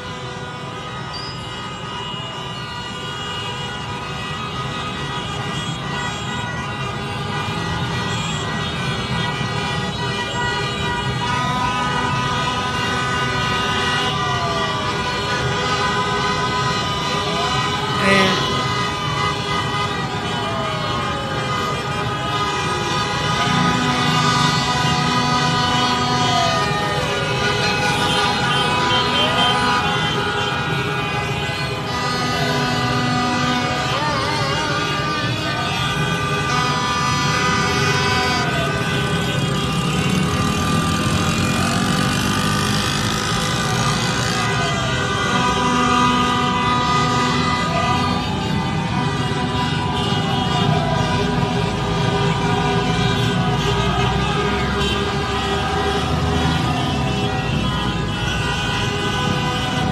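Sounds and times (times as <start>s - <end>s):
car horns honking: 0.0s - 59.9s
siren wailing: 11.1s - 59.9s
crowd voices: 16.5s - 36.7s.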